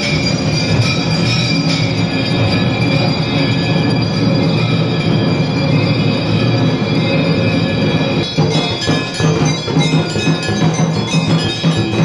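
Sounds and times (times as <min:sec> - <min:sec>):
temple bells ringing: 0:00.0 - 0:12.0.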